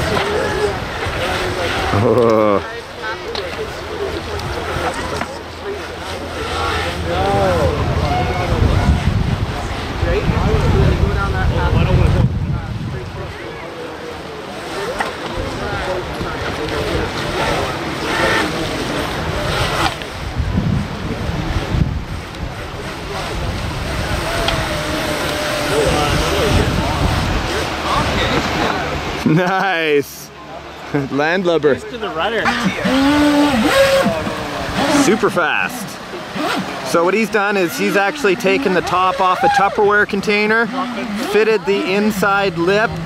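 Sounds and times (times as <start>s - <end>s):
faint voices: 0.0s - 43.0s
wind buffeting microphone: 6.9s - 13.6s, 18.8s - 29.2s
rushing creek water: 13.3s - 43.0s.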